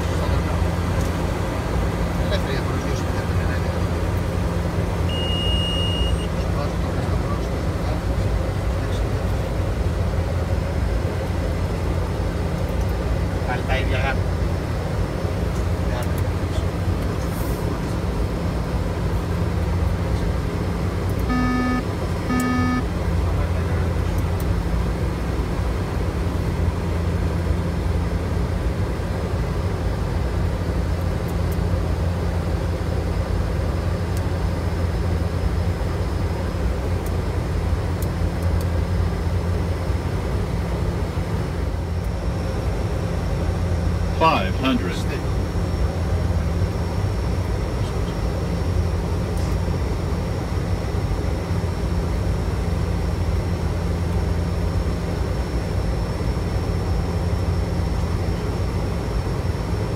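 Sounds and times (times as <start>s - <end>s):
turboprop engines droning: 0.0s - 59.9s
short electronic cockpit tones: 5.1s - 6.4s, 21.2s - 22.9s.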